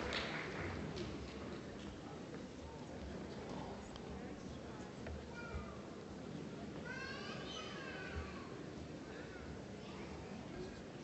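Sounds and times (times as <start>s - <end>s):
low murmur in a hall: 0.0s - 11.0s.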